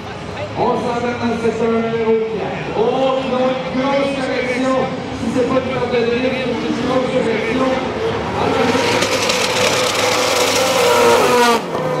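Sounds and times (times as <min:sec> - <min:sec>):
car engines revving high: 0:02.9 - 0:12.0.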